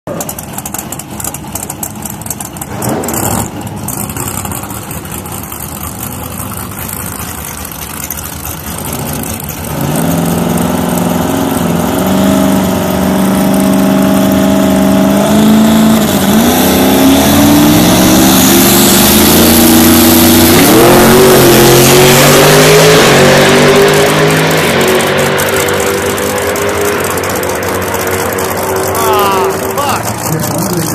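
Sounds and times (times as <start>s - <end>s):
drag car engine revving: 0.1s - 30.9s.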